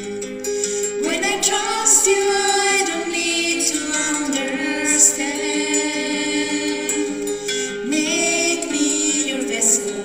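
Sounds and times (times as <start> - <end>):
voices singing a hymn: 1.0 - 10.0.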